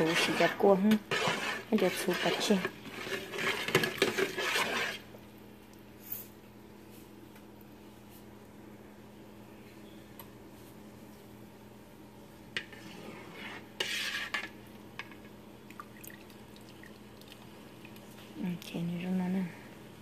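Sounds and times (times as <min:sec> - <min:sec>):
spoon scraping metal pot: 0:00.0 - 0:05.1, 0:12.6 - 0:15.3.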